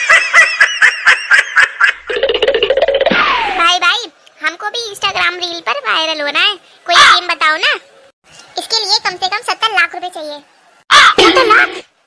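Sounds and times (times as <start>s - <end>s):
high-pitched cartoon voice laughing: 10.9s - 11.9s.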